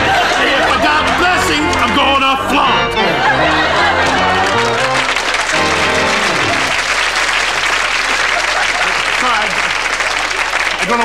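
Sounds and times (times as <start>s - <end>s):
sung hymn with accompaniment: 0.0s - 7.0s
audience laughing: 0.0s - 10.6s
audience applauding: 0.0s - 11.0s.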